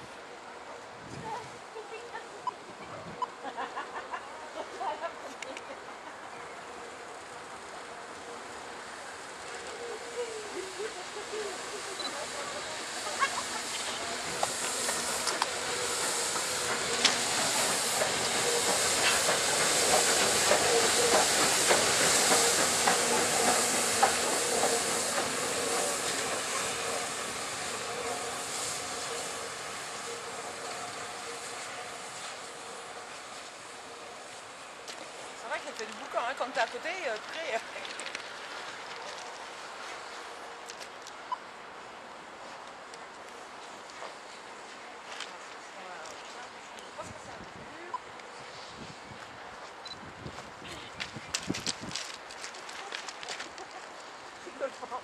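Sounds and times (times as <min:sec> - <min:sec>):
wheels clicking over rail joints: 0:12.8 - 0:27.0, 0:34.9 - 0:39.5.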